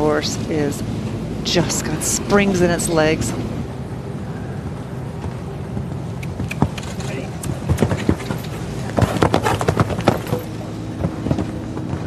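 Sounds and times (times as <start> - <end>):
horse hooves cantering on sand: 5.1 - 12.0.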